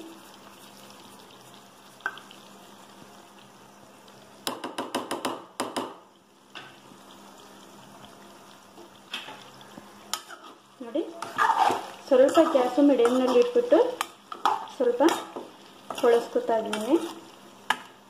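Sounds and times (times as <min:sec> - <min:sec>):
low steady sizzle: 0:00.0 - 0:18.0.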